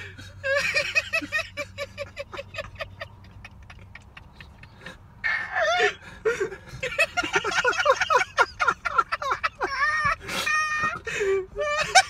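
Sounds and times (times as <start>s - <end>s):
person laughing hard: 0.0s - 12.0s.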